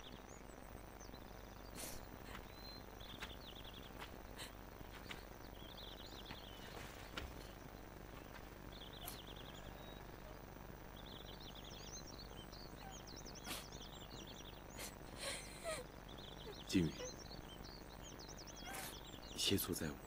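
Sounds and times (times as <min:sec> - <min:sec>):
background hiss: 0:00.0 - 0:20.0
birds chirping in trills: 0:00.0 - 0:20.0.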